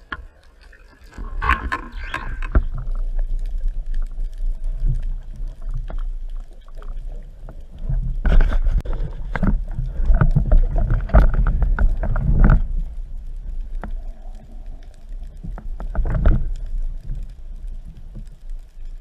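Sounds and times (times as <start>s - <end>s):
underwater rumbling and sloshing: 0.0s - 19.0s.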